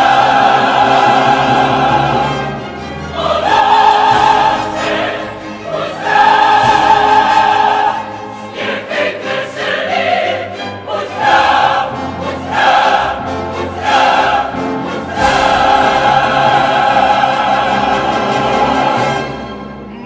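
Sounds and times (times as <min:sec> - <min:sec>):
operatic voices singing: 0:00.0 - 0:19.8
orchestra playing: 0:00.0 - 0:20.0.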